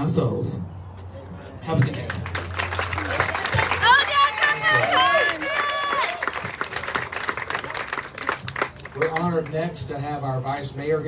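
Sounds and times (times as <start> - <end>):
sparse applause: 1.8 - 9.5.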